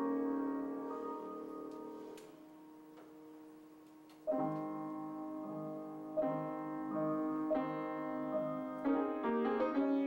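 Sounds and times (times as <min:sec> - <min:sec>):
piano notes: 0:00.0 - 0:10.0.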